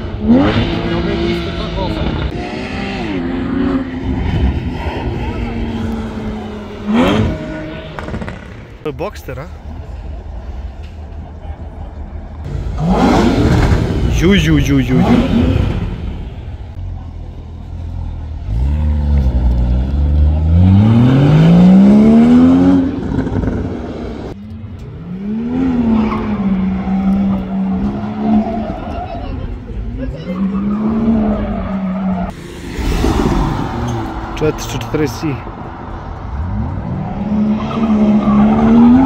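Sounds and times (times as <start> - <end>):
car engine revving: 0.0 - 8.9, 12.4 - 39.0
car engine high drone: 0.0 - 39.0.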